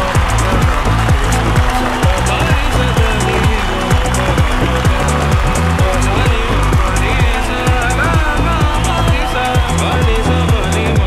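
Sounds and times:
audience applause: 0:00.0 - 0:11.0
loud music with drum beat: 0:00.0 - 0:11.0.

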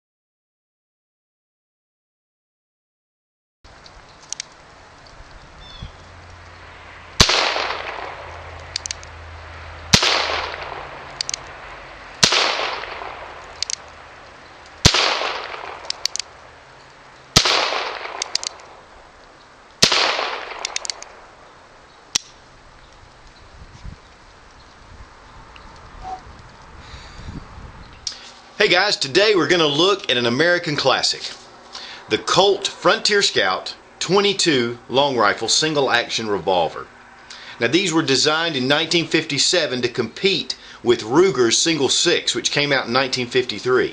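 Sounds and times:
revolver shots echoing: 0:07.2 - 0:08.4, 0:09.9 - 0:11.4, 0:12.2 - 0:13.8, 0:14.8 - 0:16.3, 0:17.4 - 0:18.8, 0:19.8 - 0:21.3
revolver hammer clicks: 0:11.1 - 0:11.5, 0:13.5 - 0:13.9, 0:15.6 - 0:16.3, 0:18.0 - 0:18.8, 0:20.5 - 0:21.2.

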